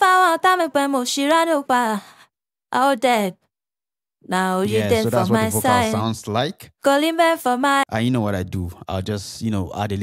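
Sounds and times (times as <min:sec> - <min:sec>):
woman singing solo: 0:04.6 - 0:06.0.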